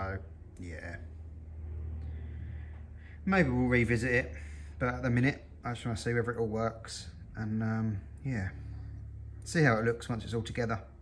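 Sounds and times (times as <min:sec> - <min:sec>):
faint background noise: 0:00.0 - 0:11.0
steady low hum: 0:00.0 - 0:11.0.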